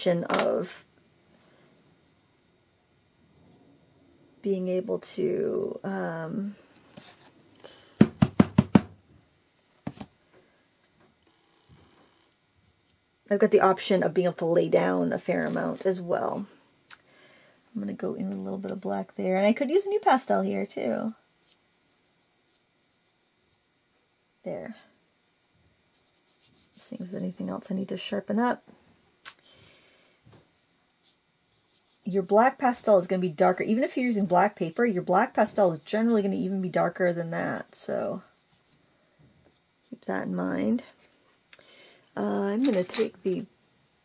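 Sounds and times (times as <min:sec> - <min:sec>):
board knocking on tabletop: 0:08.0 - 0:09.0
faint soft hissing: 0:10.2 - 0:43.7.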